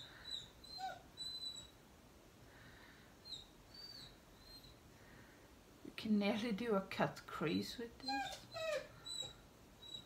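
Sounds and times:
pet whimpering squeaks: 0.0s - 1.8s, 3.2s - 4.8s, 8.0s - 10.0s.

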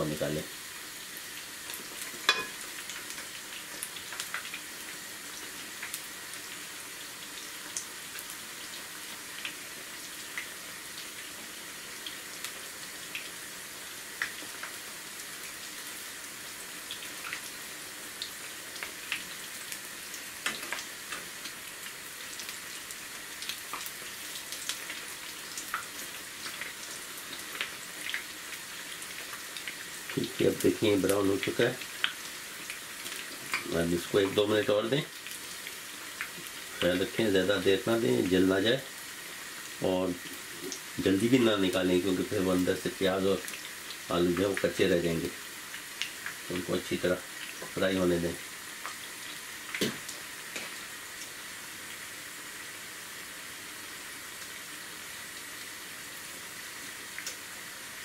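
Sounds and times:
food sizzling in hot oil: 0.0s - 58.0s
oil popping and crackling: 1.6s - 6.1s, 18.2s - 37.3s, 39.6s - 51.4s, 57.0s - 57.5s.

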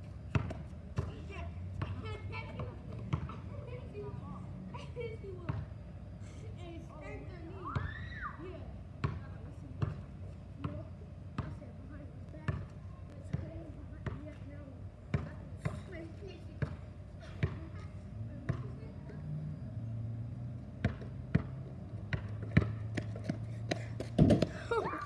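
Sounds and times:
basketball bouncing on asphalt: 0.0s - 3.7s, 5.4s - 5.9s, 7.6s - 8.2s, 8.9s - 17.8s, 18.4s - 19.4s, 20.2s - 25.0s.

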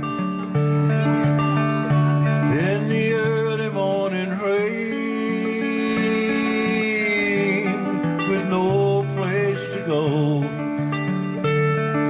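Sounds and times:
acoustic guitar country-folk accompaniment: 0.0s - 12.0s
gliding melody notes: 0.0s - 12.0s.

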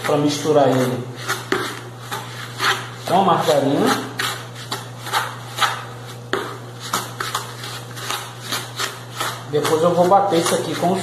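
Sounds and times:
hand kneading margarine into sugar: 0.0s - 11.0s
steady low hum: 0.0s - 11.0s.

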